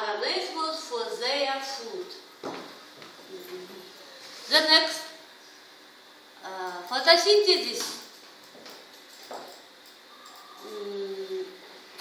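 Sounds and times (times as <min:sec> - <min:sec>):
woman saying uhh: 0:10.6 - 0:11.7.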